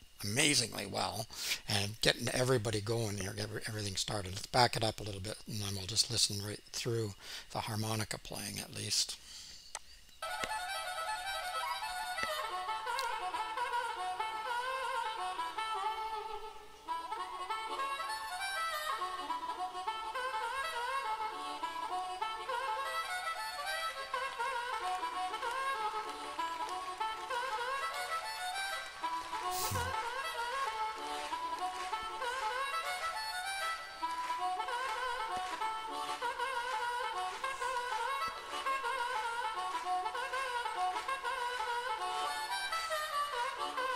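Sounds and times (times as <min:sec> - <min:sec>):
harmonica with bent sliding notes: 0:00.0 - 0:43.9.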